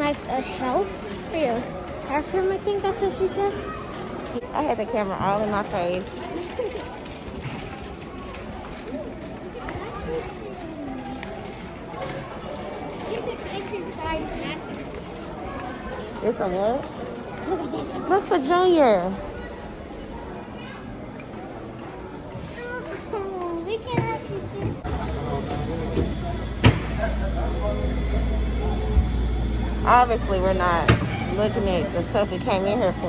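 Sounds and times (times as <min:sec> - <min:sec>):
steady background noise: 0:00.0 - 0:33.0
indistinct voices talking: 0:23.7 - 0:33.0.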